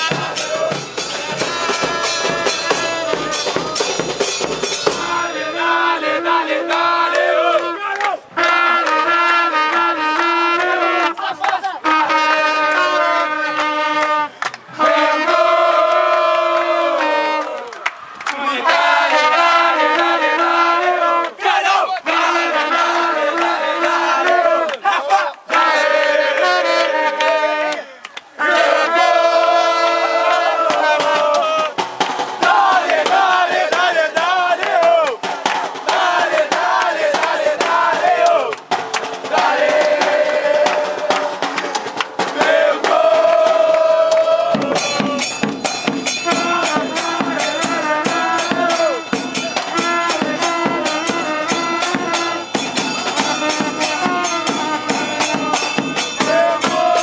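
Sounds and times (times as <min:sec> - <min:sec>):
trumpet playing: 0:00.0 - 0:17.9, 0:18.6 - 0:31.8, 0:32.4 - 0:38.6, 0:39.2 - 0:57.0
bass drums and percussion: 0:00.0 - 0:21.4, 0:28.5 - 0:57.0
crowd chanting: 0:00.0 - 0:57.0.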